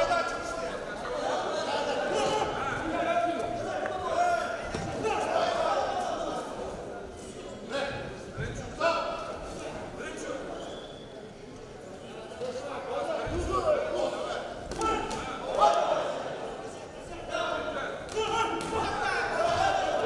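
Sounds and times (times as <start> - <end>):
men calling out in echoing hall: 0.0 - 20.0.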